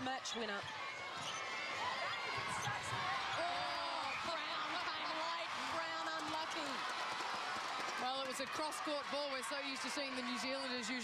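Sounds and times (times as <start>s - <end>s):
crowd din: 0.0s - 11.0s.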